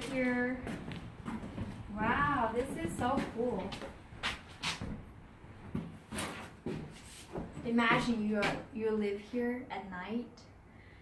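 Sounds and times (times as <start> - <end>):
footsteps on wooden floor: 0.0 - 8.7.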